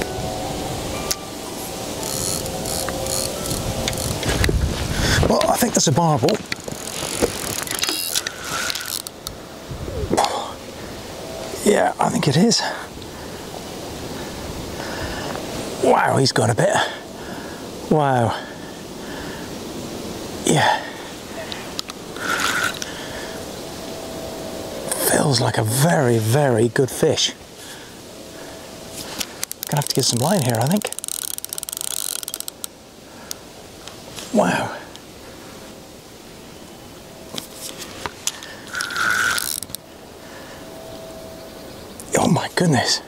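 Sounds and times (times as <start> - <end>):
fishing reel mechanical buzz: 1.8 - 4.5, 6.4 - 9.2, 22.2 - 22.9, 29.4 - 32.7, 38.7 - 39.8.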